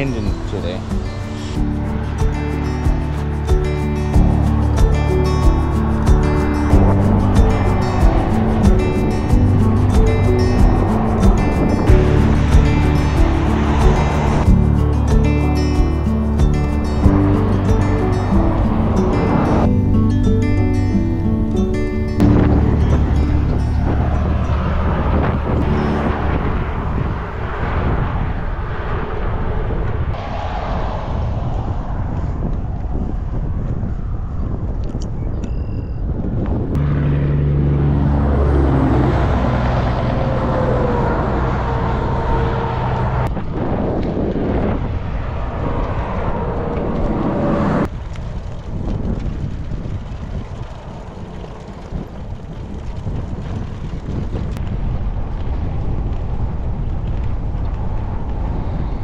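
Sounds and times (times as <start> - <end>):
bicycle tyre noise: 0.0 - 19.6, 38.2 - 59.0
motor vehicle passing: 0.0 - 34.3, 36.6 - 59.0
wind on microphone: 0.0 - 59.0.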